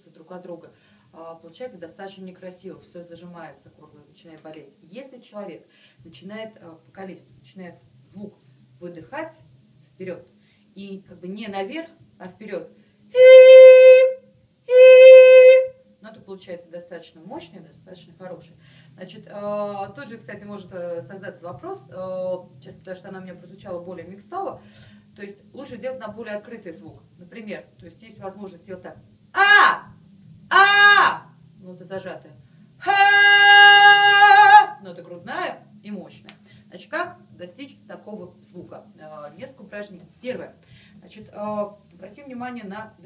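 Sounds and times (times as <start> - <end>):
woman singing held vowel: 13.1 - 15.7, 29.4 - 29.9, 30.5 - 31.3, 32.8 - 34.8.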